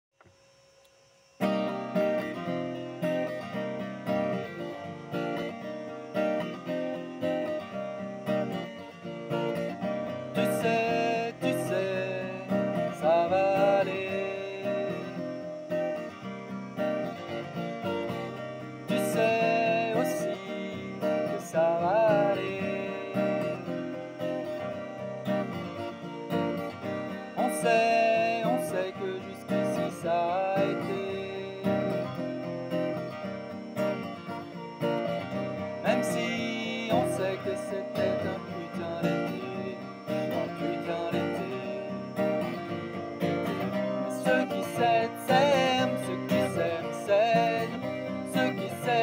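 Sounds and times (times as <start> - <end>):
acoustic guitar strumming: 1.1 - 49.0.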